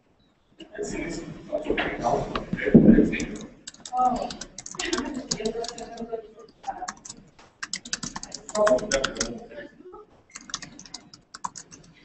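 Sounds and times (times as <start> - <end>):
background voice: 0.6 - 12.0
laptop keyboard typing: 2.6 - 9.6, 10.3 - 12.0.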